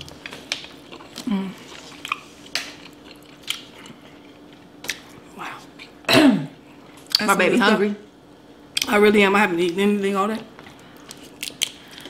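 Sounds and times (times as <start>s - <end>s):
faint steady hum: 0.0s - 12.0s
chewing seafood: 0.1s - 6.0s, 10.6s - 12.0s.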